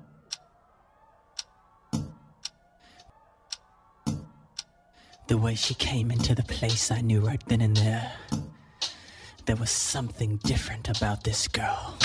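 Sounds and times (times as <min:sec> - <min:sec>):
clock-like ticking: 0:00.0 - 0:00.5, 0:01.4 - 0:11.4.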